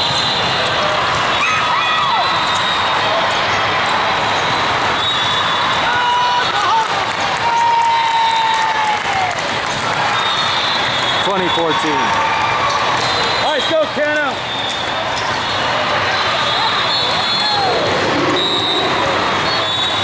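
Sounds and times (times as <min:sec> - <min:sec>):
many voices talking: 0:11.2 - 0:20.0
shoe squeaks: 0:18.3 - 0:20.0.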